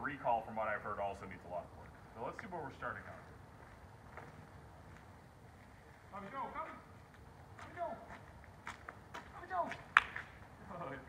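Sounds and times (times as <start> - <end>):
footsteps on asphalt: 1.2 - 10.6.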